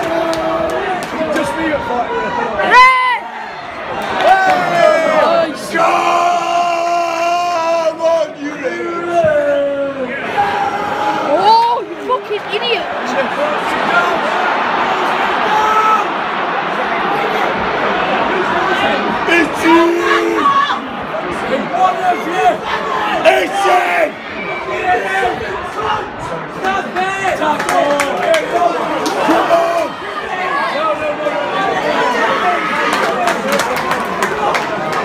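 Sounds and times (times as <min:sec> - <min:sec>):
crowd shouting and roaring: 0:00.0 - 0:35.0
man shouting: 0:19.3 - 0:20.8.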